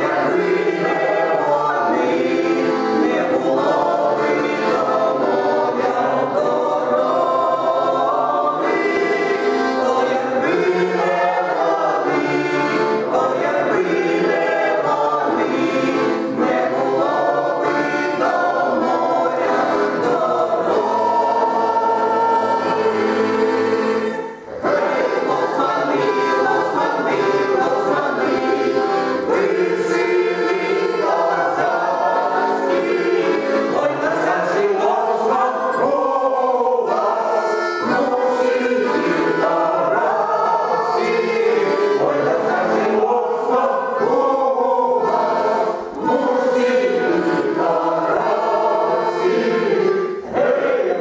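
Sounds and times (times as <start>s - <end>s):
mixed choir singing folk song: 0.0s - 51.0s.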